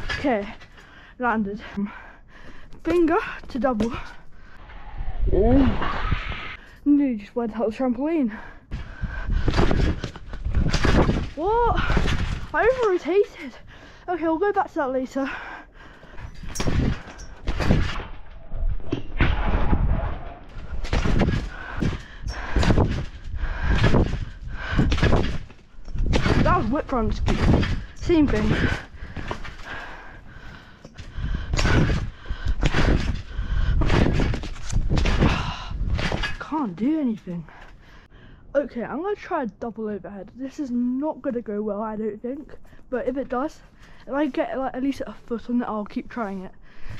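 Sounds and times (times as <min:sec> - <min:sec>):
wind rushing on camera: 0:04.6 - 0:06.6, 0:16.5 - 0:30.0
thumps on a trampoline: 0:08.8 - 0:13.2, 0:16.4 - 0:18.1, 0:18.9 - 0:29.8, 0:31.5 - 0:37.1
springs and net rattling: 0:08.8 - 0:13.3, 0:16.2 - 0:37.2.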